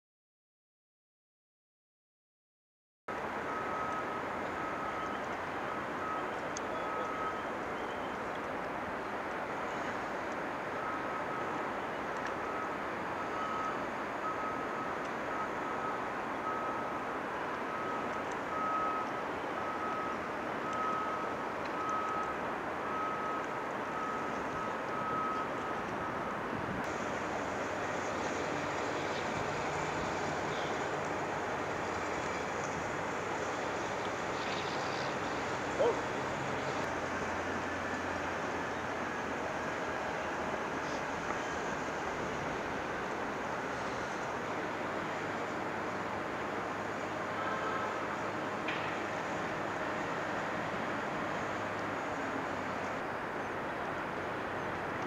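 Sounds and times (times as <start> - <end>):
construction machinery hum: 3.1 - 55.0
traffic: 3.1 - 55.0.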